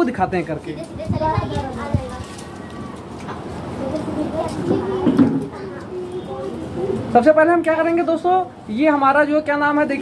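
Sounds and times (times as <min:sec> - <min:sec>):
outdoor background noise: 0:00.0 - 0:10.0.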